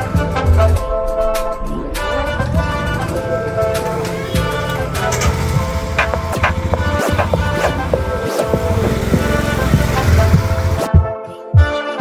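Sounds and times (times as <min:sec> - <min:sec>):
road noise: 0:00.0 - 0:10.9
background music: 0:00.0 - 0:12.0
motorcycle engine rumble: 0:01.8 - 0:10.9.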